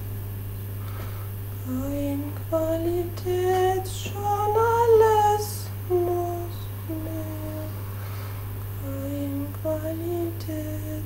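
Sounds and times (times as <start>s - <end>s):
person humming a melody: 1.6s - 7.7s, 8.8s - 11.0s.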